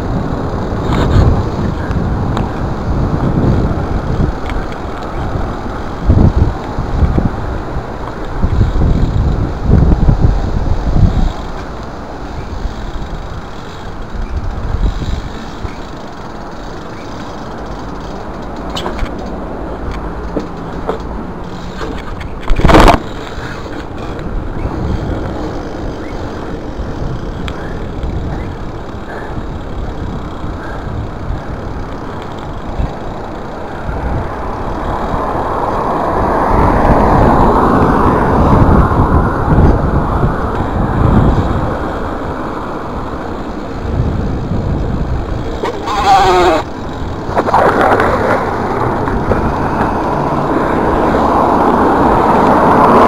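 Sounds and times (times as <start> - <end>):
bike tyres rolling on pavement: 0.0 - 53.0
wind rushing on microphone: 0.0 - 53.0.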